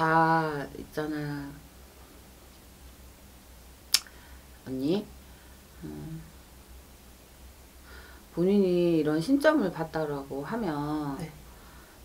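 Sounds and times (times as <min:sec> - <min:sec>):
sharp click: 0:03.9 - 0:04.1.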